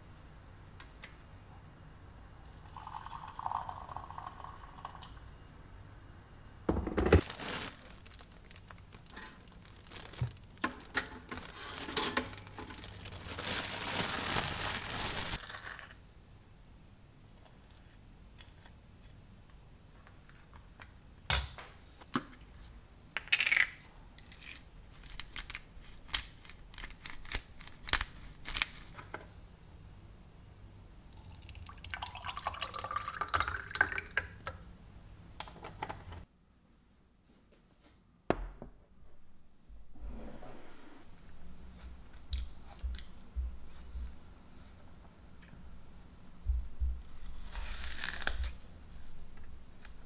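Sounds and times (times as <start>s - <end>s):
water pouring into a mug: 2.7s - 5.2s, 31.2s - 34.3s.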